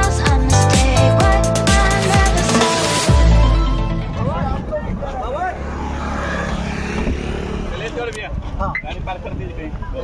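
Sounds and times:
engine humming: 0.0 - 8.6.

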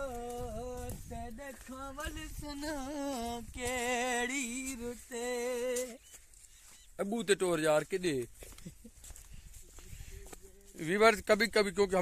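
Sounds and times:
person singing slow tune: 0.0 - 6.0.

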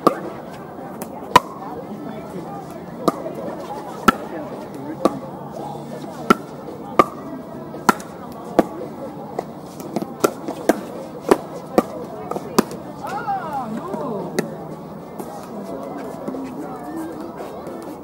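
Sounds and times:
voices talking: 0.0 - 18.0.

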